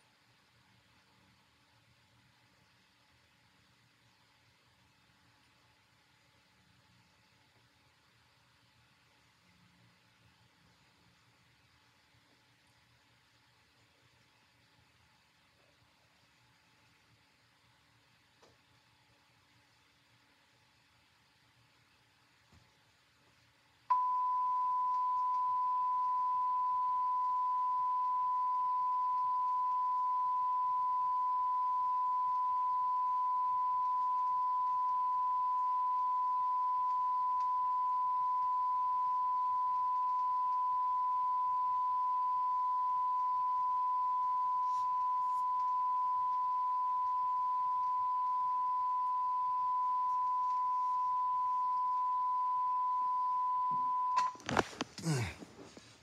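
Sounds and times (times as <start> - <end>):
steady beep tone: 23.9 - 54.4
clicks and handling noise: 54.2 - 55.9.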